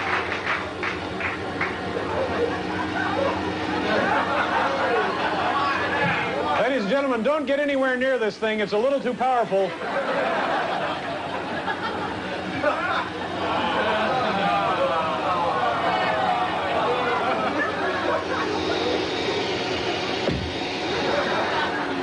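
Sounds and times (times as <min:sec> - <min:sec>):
audience laughing and chattering: 0:00.0 - 0:07.4, 0:09.1 - 0:22.0
faint steady hum: 0:00.0 - 0:22.0.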